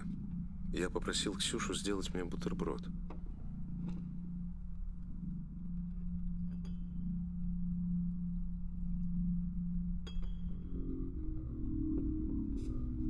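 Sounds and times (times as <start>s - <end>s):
low steady drone: 0.0s - 13.0s.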